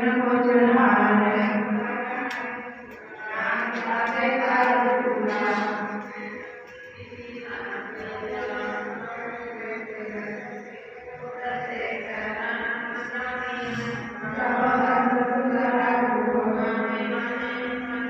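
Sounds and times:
voice chanting devotional recitation: 0.0 - 18.0.

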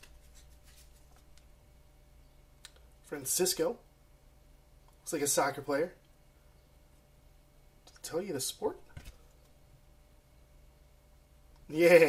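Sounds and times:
trading cards rustling and clicking: 0.0 - 1.5.

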